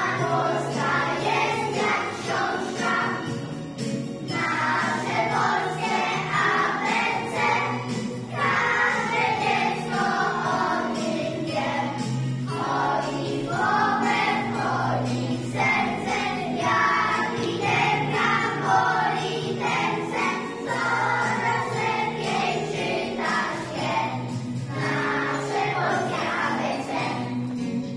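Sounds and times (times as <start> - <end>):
children singing in unison: 0.0 - 27.4
musical accompaniment low notes: 0.0 - 27.9.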